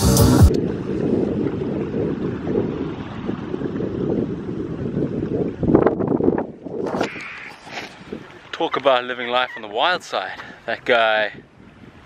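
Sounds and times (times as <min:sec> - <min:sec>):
wind buffeting microphone: 0:00.5 - 0:12.0.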